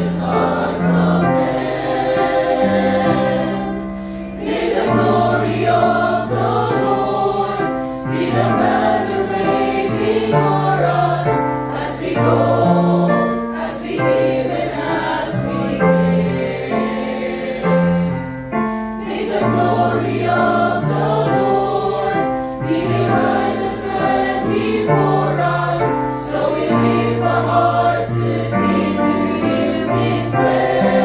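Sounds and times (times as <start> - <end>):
choir singing a hymn: 0.0 - 31.0
recorded accompaniment: 0.0 - 31.0.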